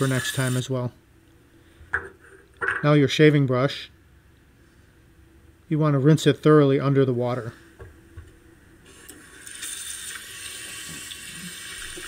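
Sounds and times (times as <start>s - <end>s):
faucet water running into sink: 0.0s - 0.7s, 8.9s - 12.0s.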